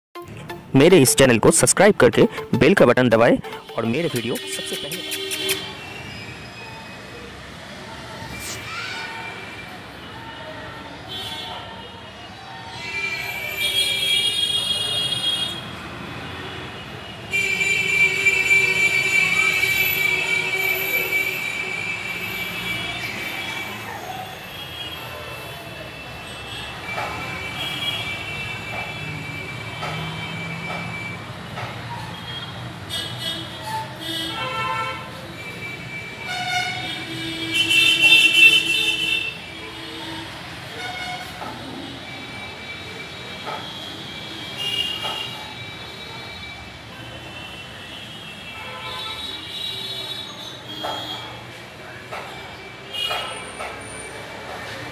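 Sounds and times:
horn toots: 3.4 - 5.8.

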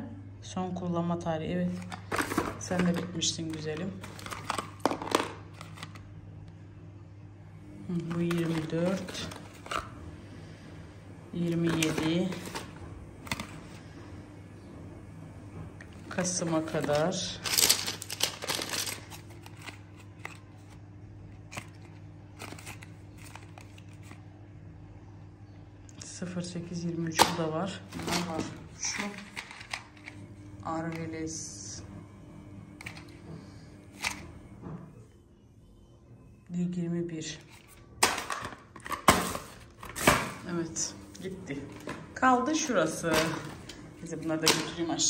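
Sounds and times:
low steady hum: 0.0 - 45.0
boxes and blister packs rustling: 1.7 - 6.0, 8.1 - 9.9, 11.5 - 13.8, 16.1 - 20.8, 21.4 - 24.2, 27.9 - 30.1, 37.5 - 40.4.

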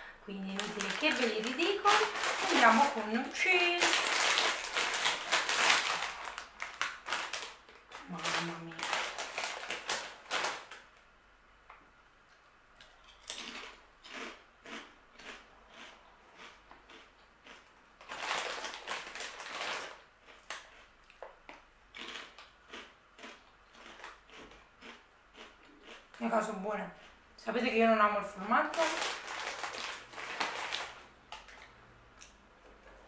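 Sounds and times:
plastic bag crinkling: 0.4 - 10.9, 18.0 - 20.7, 28.6 - 31.7
chips being chewed: 12.8 - 26.3, 28.8 - 33.0.

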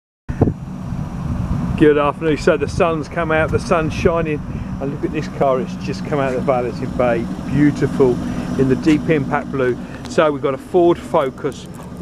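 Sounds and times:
low outdoor rumble: 0.3 - 12.0
man speaking: 1.8 - 11.8.

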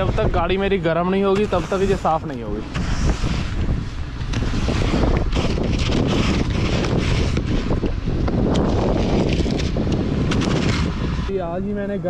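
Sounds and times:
wind blowing on microphone: 0.0 - 12.0
scraper scraping ice: 1.2 - 11.2.

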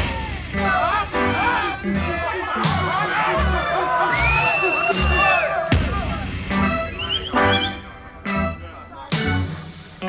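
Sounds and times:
audience cheering: 0.0 - 10.0
reggae band playing: 0.0 - 10.0.

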